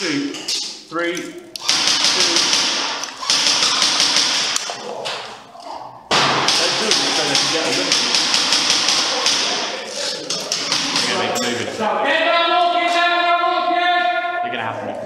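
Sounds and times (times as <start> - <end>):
airsoft guns rapid firing: 1.6 - 4.8, 6.2 - 9.8, 10.5 - 11.4.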